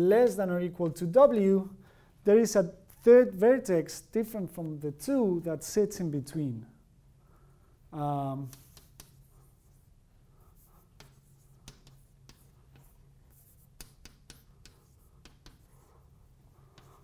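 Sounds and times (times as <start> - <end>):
chalk tapping and scratching on blackboard: 8.4 - 17.0.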